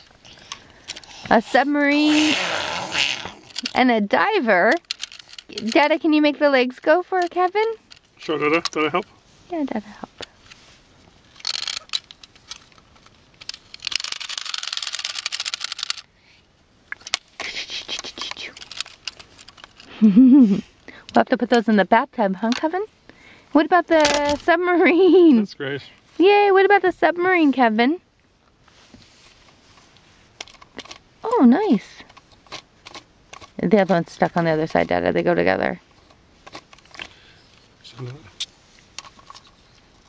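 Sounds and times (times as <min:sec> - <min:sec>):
wind-up toy motor whirring: 0:00.2 - 0:04.0, 0:04.6 - 0:06.0, 0:11.3 - 0:12.8, 0:13.4 - 0:16.0, 0:17.1 - 0:19.9
plastic toy clicks: 0:13.4 - 0:16.0.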